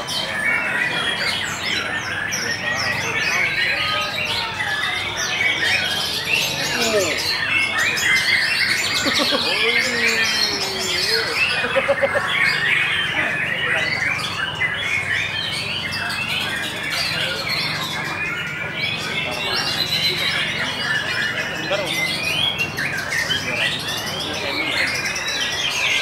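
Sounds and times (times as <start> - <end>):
caged songbirds chorus: 0.0 - 26.0.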